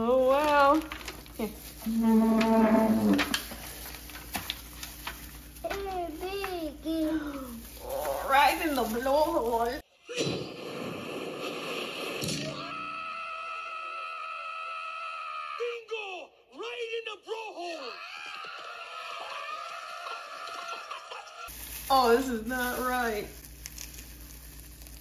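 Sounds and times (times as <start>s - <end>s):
shouting: 12.5s - 21.0s
long held yell: 12.6s - 16.3s.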